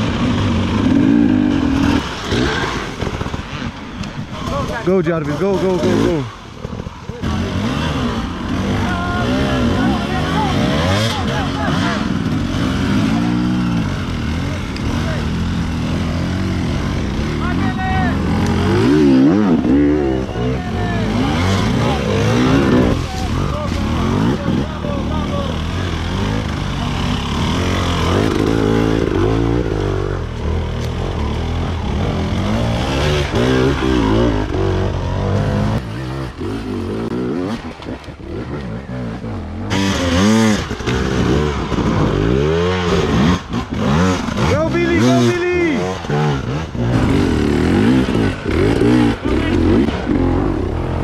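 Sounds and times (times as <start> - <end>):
motorcycles revving: 0.0 - 51.0.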